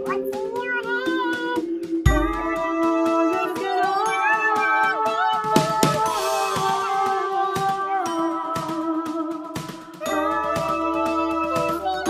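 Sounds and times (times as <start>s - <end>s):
high voice singing long notes: 0.0s - 12.0s
steady beat: 0.0s - 12.0s.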